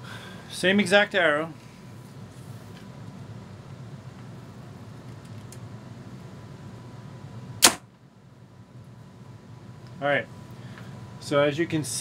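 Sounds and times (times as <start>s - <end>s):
bow shot sharp report: 7.6s - 7.8s.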